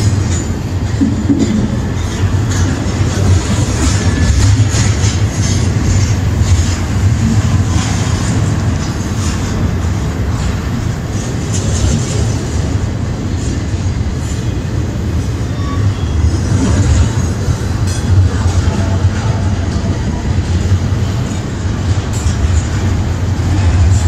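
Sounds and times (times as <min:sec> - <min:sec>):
clicks and rattles from train cars: 0:00.0 - 0:24.0
freight train wheels rumbling: 0:00.0 - 0:24.0.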